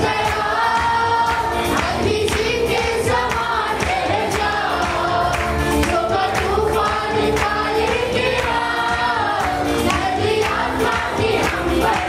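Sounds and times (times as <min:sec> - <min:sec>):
backing singers: 0:00.0 - 0:12.0.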